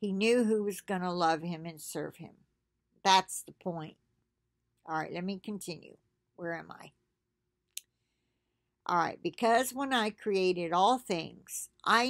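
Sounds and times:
woman speaking: 0.0 - 2.3, 3.1 - 3.9, 4.9 - 6.9, 8.9 - 12.0.

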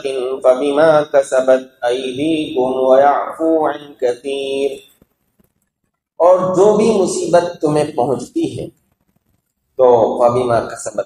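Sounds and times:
man chanting melodically: 0.0 - 4.9, 6.2 - 8.7.

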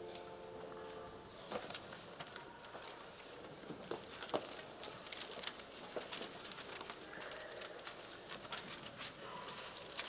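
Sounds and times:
people walking: 0.0 - 10.0.

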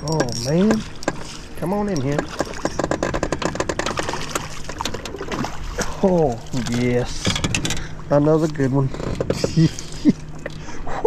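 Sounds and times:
fish splashing: 3.6 - 7.0.

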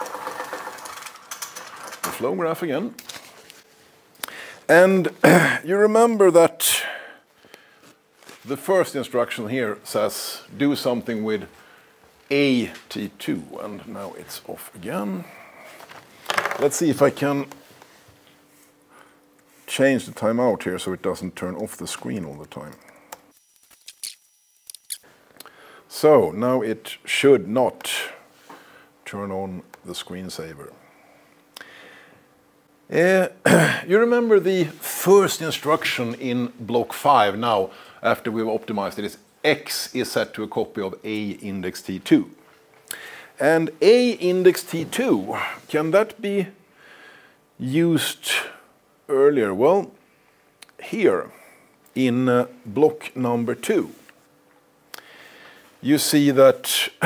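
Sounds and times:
roller clicks: 0.0 - 2.2
roller mechanism whirring: 0.0 - 2.2.

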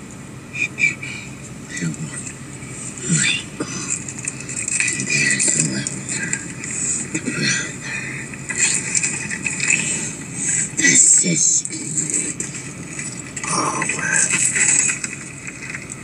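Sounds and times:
hissy background noise: 0.0 - 16.0
indistinct voices: 0.0 - 16.0.

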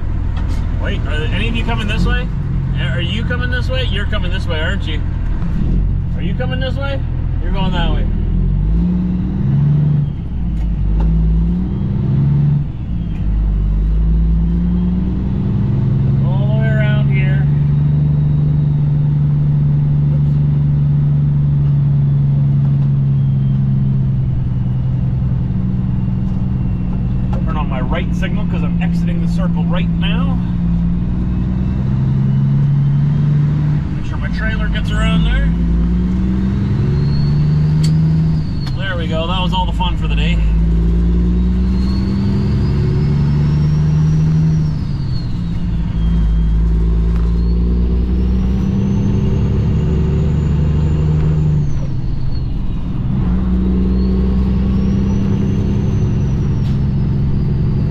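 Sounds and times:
diesel truck engine under load: 0.0 - 57.9
gear changes: 0.0 - 57.9.

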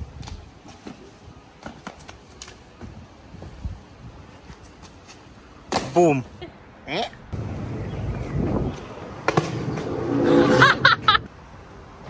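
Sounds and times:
trainers scuffing on paving: 0.1 - 5.5.

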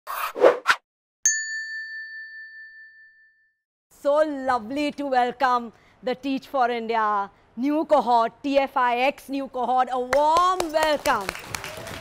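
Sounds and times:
bright ringing ding: 1.3 - 3.6.

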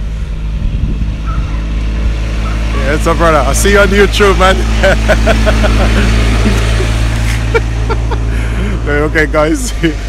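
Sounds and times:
small vehicle engine pulling away: 0.0 - 9.0
steady low rumble: 0.0 - 10.0.

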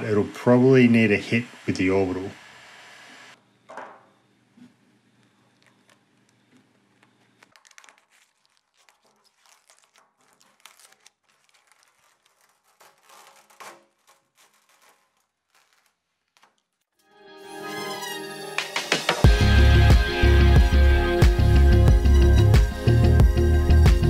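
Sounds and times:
sticker crinkling and tearing: 5.2 - 17.0.

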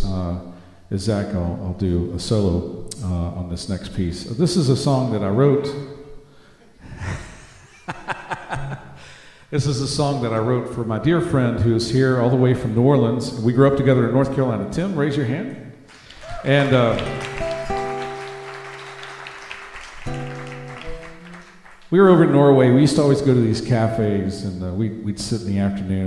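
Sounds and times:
man chuckling: 6.8 - 9.1
man breathing into microphone: 9.0 - 9.5
guitar chord ringing: 16.7 - 21.6.

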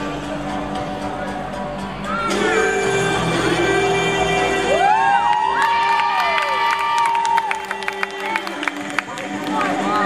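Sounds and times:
audience cheering and screaming: 4.6 - 8.4
people clapping: 5.0 - 10.0.

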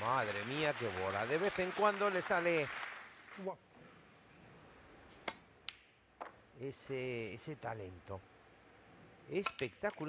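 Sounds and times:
snooker balls clicking: 9.4 - 10.0.

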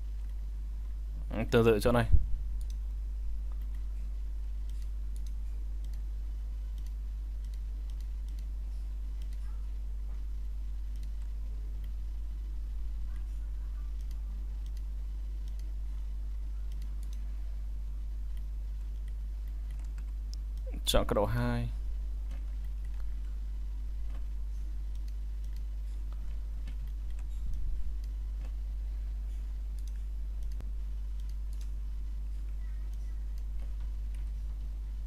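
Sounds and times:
low electrical hum: 0.0 - 35.0
person speaking: 1.3 - 2.2, 20.6 - 21.8
computer mouse clicking: 2.6 - 2.8, 3.5 - 3.9, 4.6 - 6.1, 6.7 - 8.5, 9.1 - 9.5, 10.9 - 12.0, 13.9 - 17.3, 18.3 - 20.7, 24.9 - 28.6, 29.3 - 34.6.

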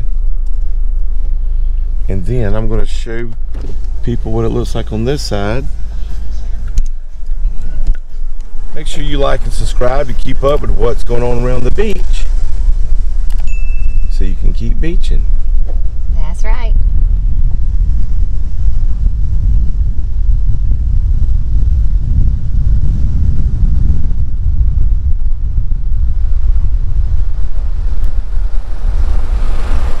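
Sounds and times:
road noise rumble: 0.0 - 30.0
wind on microphone: 0.0 - 30.0.

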